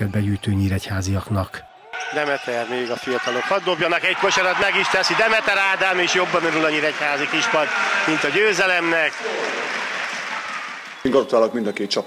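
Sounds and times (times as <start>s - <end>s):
hands clapping: 4.4s - 11.1s.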